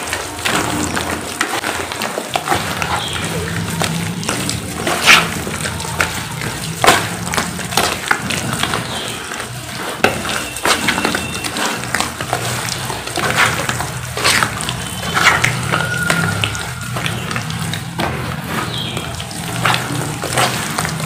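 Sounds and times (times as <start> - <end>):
wet cement squelching by hand: 0.0 - 21.0.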